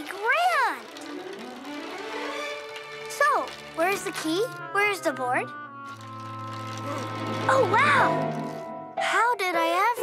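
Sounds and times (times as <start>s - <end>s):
soft background music: 0.1s - 10.0s.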